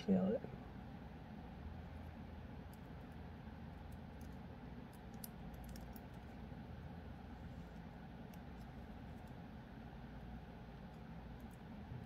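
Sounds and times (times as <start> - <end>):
steady low hum: 0.0 - 12.0
pliers and wire clicking: 3.8 - 6.3.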